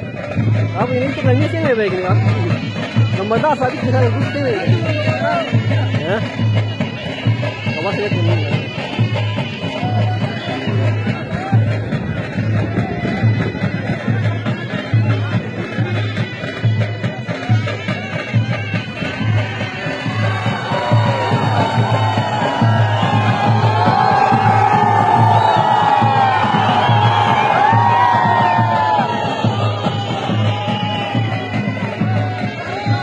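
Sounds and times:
crowd shouting and cheering: 0.0 - 33.0
steady drum beat: 0.0 - 33.0
traditional music: 0.0 - 33.0.

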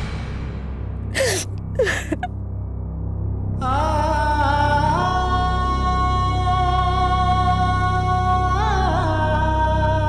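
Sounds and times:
low background music: 0.0 - 10.0
woman sobbing: 1.2 - 2.3.

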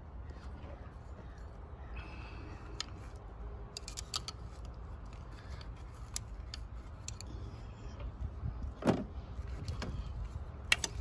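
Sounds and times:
low steady rumble: 0.0 - 11.0
small metallic clicks: 2.7 - 8.1, 9.4 - 11.0.

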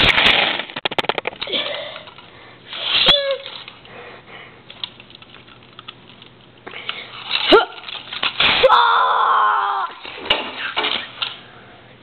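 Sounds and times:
faint steady hum: 1.0 - 12.0
plastic figure pieces clicking: 4.7 - 6.3.

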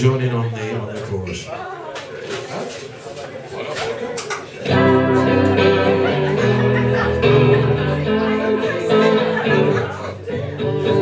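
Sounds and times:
voices: 0.7 - 11.0
live band with electric guitar: 4.2 - 11.0.

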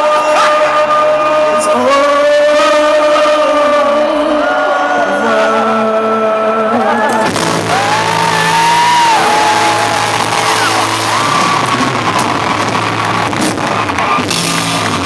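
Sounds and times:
crowd voices: 0.0 - 15.0
loud live band music: 0.0 - 15.0.

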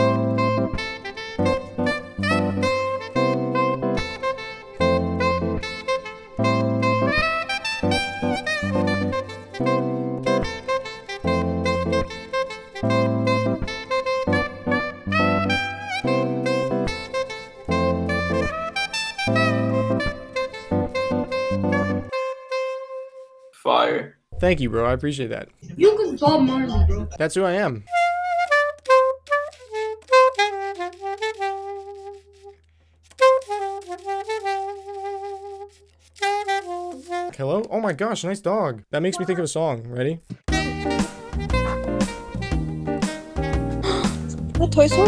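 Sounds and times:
rhythmic backing music: 0.0 - 22.2, 25.6 - 27.2, 40.3 - 45.0
soprano saxophone melody: 0.0 - 23.6, 27.9 - 37.4, 39.0 - 39.4, 40.5 - 45.0.

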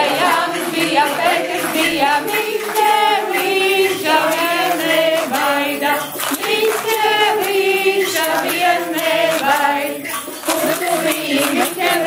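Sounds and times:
women singing folk song: 0.0 - 12.0.

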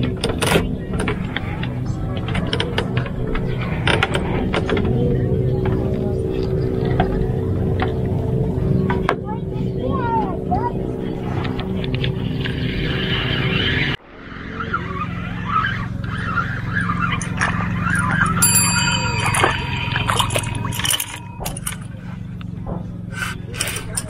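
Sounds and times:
motor humming: 15.1 - 24.0
lower steady hum: 15.2 - 24.0
high chirping sounds: 16.1 - 22.1.

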